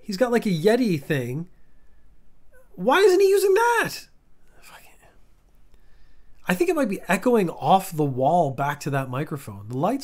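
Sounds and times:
faint breathy sound: 4.4 - 6.5.

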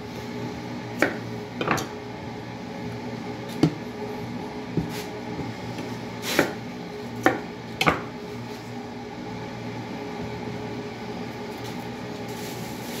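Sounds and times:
steady hum: 0.0 - 13.0
knife chopping on wooden board: 1.0 - 1.9, 3.6 - 3.8, 4.8 - 6.6, 7.2 - 8.1.

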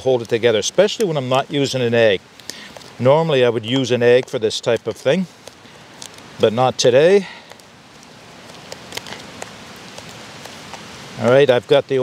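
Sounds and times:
wind hiss: 0.0 - 12.0.

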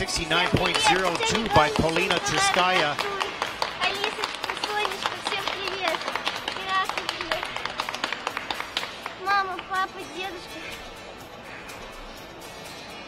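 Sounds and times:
scattered clapping: 0.0 - 10.0
faint music: 0.0 - 13.0.

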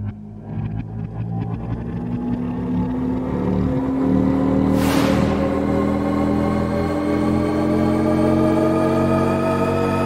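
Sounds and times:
sustained rising tones: 2.1 - 9.7
low droning rumble: 4.6 - 7.0
loud whoosh: 4.7 - 6.5.

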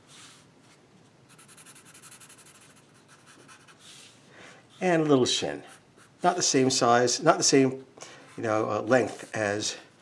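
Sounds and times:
felt-tip marker scratching on paper: 1.3 - 3.8.

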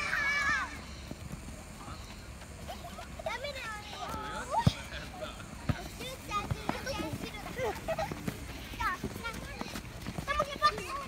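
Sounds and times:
children shouting: 0.0 - 1.0
thuds of running feet: 5.6 - 11.0.

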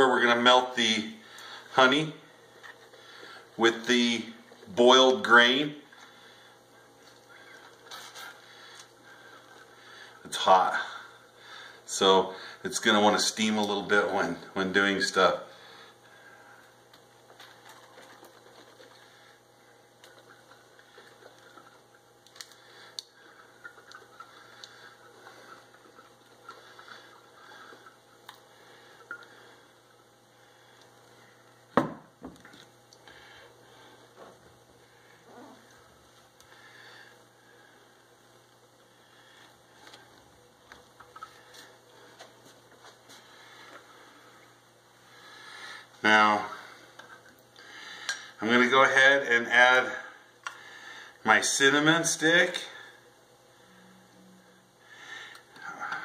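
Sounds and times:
glass jug set down on countertop: 31.8 - 32.4.

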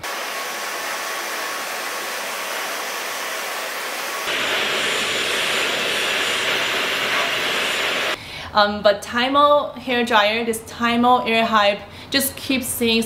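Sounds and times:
hair dryer blowing: 0.0 - 8.2
louder hissy hair dryer: 0.0 - 8.2.

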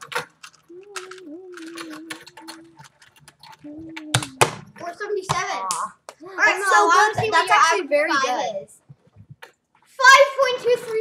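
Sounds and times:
puzzle cube clicking: 0.0 - 4.7
person humming a long note: 0.7 - 2.8.

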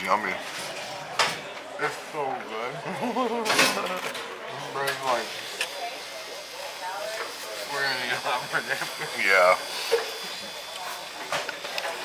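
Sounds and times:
person laughing: 2.8 - 4.1.

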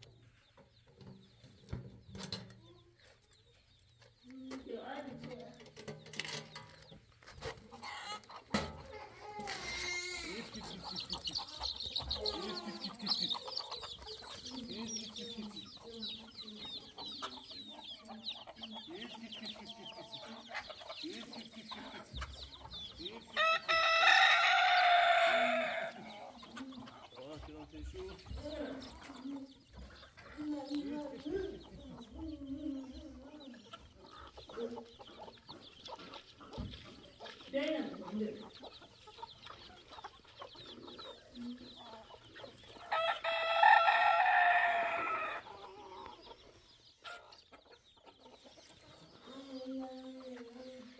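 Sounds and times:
chickens clucking: 0.0 - 50.9
chicks peeping: 0.0 - 50.9
rooster crowing: 23.4 - 26.0, 42.9 - 45.5.

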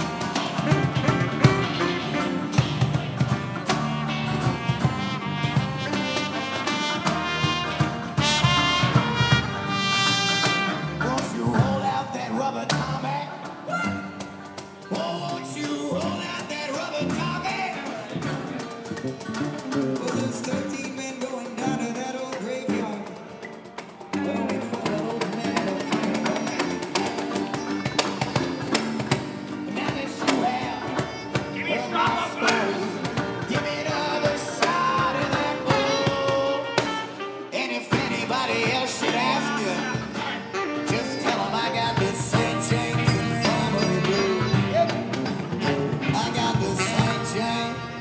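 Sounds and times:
street band playing: 0.0 - 48.0
man singing: 8.2 - 13.9, 14.8 - 23.4, 24.1 - 48.0.

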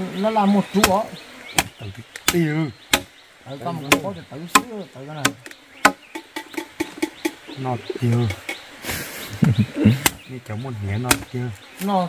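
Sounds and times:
knife chopping meat on wood: 11.1 - 11.3.

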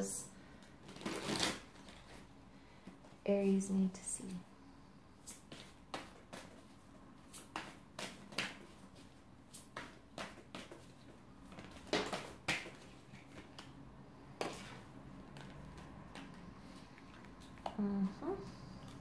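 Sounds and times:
cards shuffling: 0.6 - 2.3, 5.2 - 13.8.

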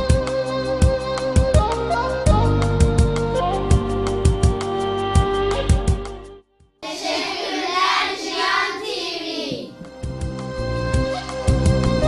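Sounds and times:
children singing together: 6.8 - 9.8.

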